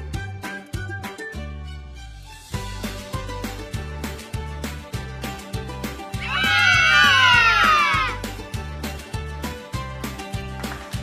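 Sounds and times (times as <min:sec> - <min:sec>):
upbeat music with steady beat: 0:00.0 - 0:11.0.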